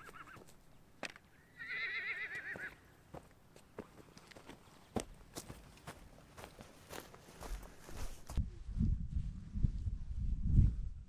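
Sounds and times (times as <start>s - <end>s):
footsteps on stony ground: 0.0s - 1.3s, 2.5s - 8.4s.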